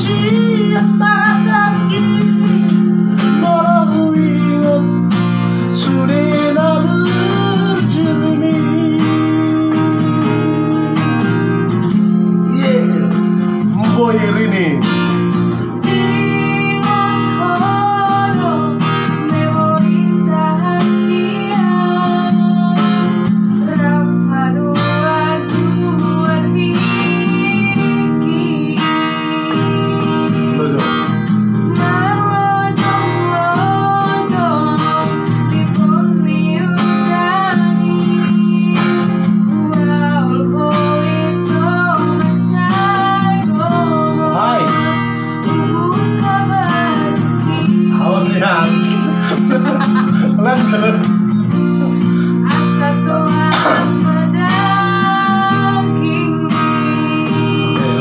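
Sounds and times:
woman singing a slow ballad: 0.0 - 13.8, 15.1 - 58.0
acoustic guitar strumming: 0.0 - 58.0.

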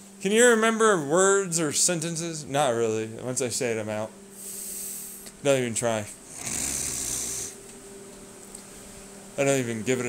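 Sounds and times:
faint steady hum: 0.0 - 10.0
man breathing into microphone: 4.4 - 5.3.

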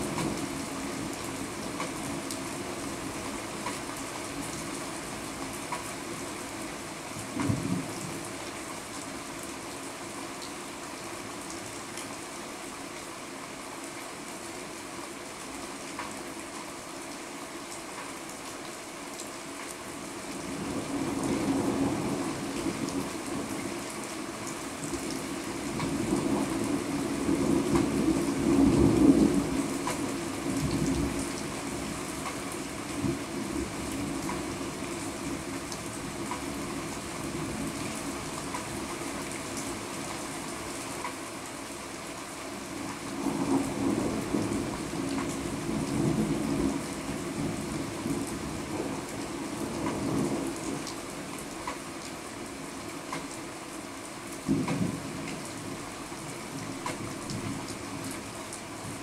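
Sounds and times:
steady rain: 0.0 - 59.0.

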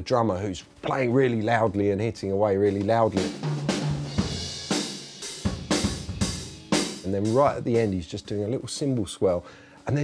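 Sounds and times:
drum kit hits: 2.7 - 8.2.

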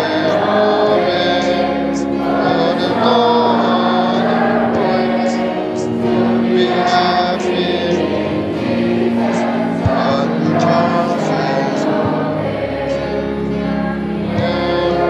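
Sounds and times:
people singing a hymn: 0.0 - 15.0.

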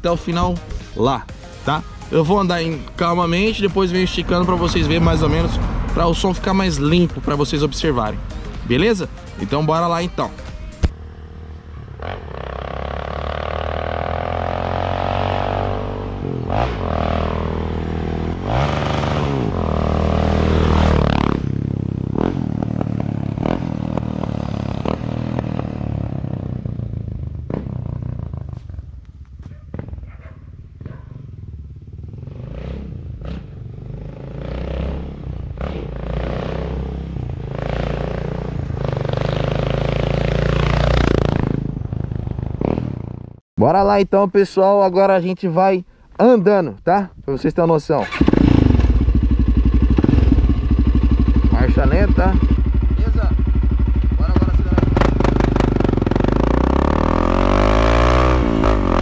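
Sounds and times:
motorcycle accelerating: 0.0 - 43.4, 48.0 - 59.0
exhaust crackles: 2.2 - 10.9, 47.9 - 59.0.

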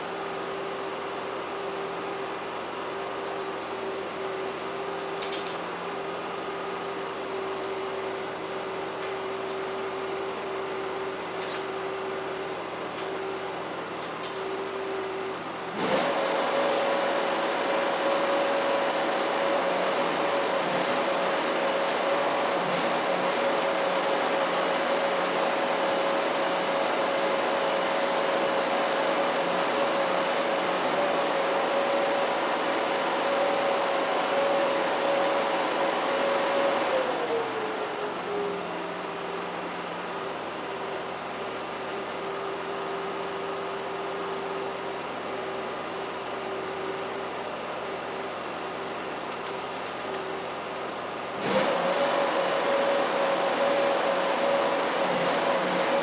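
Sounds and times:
welding machine hum: 0.0 - 56.0
welding arc crackle: 15.8 - 32.7.

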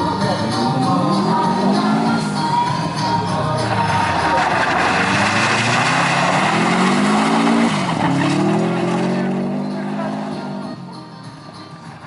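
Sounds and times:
car engine revving hard: 3.8 - 10.8.

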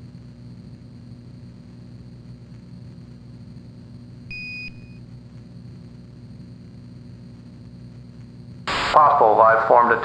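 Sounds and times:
low electronic hum: 0.0 - 10.0.

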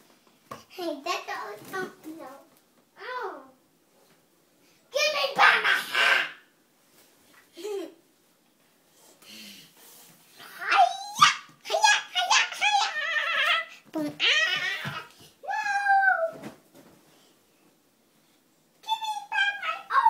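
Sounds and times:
boy squealing and crying: 10.8 - 16.4.

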